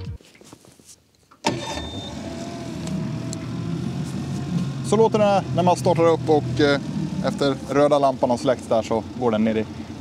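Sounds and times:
outboard motor starting and idling: 1.4s - 10.0s.

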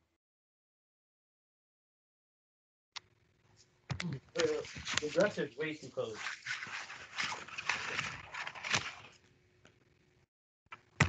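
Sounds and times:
rustling of handling: 3.5s - 9.3s.

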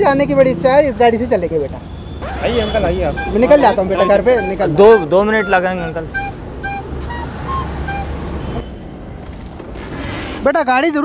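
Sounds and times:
short high beeps: 2.5s - 8.6s.

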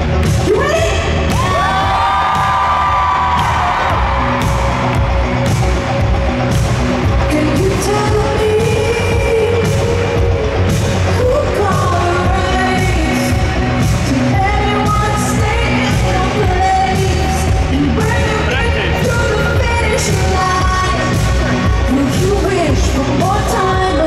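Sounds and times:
pop band with heavy bass: 0.0s - 24.0s
woman singing: 7.2s - 24.0s.

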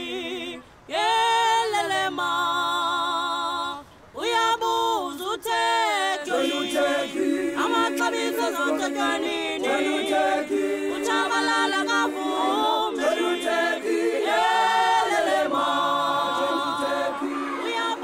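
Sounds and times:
a cappella choir singing: 0.0s - 18.0s.

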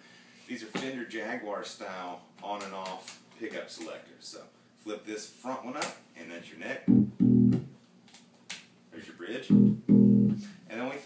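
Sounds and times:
bass guitar notes plucked: 6.9s - 7.7s, 9.5s - 10.5s.

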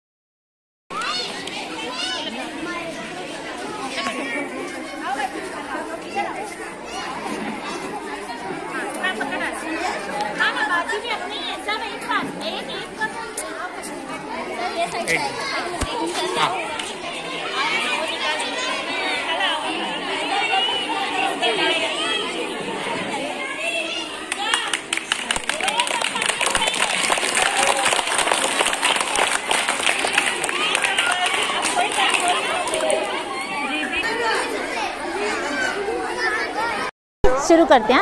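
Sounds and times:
crowd chatter: 0.9s - 38.0s.

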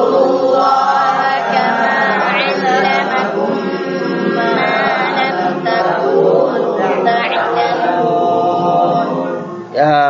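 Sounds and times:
group of voices chanting in unison: 0.0s - 9.8s.

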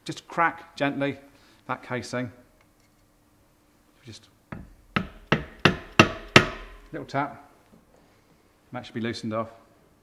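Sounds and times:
mallet tapping metal pump casing: 4.5s - 7.0s.

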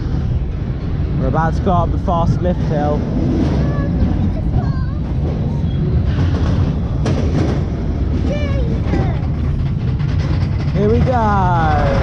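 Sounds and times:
coaster car rumbling on track: 0.0s - 12.0s.

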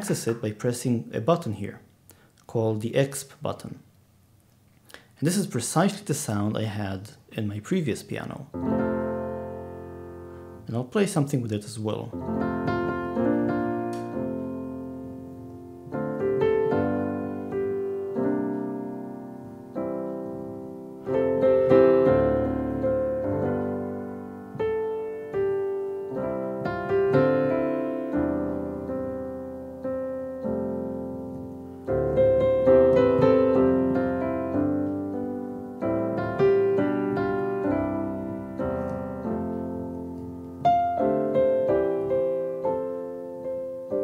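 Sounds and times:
slow piano chords: 8.5s - 10.8s, 12.0s - 44.0s.

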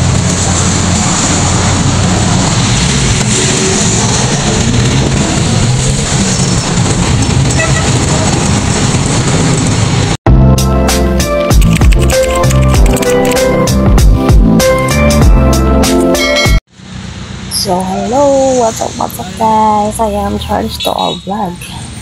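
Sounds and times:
wind rushing: 0.0s - 10.2s
road noise: 0.0s - 22.0s
vehicle engine rumble: 0.0s - 22.0s.

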